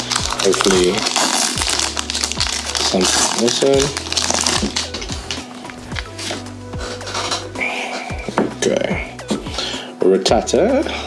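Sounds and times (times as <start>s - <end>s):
foil wrapper crinkling: 0.0s - 7.5s
background music: 0.0s - 11.0s.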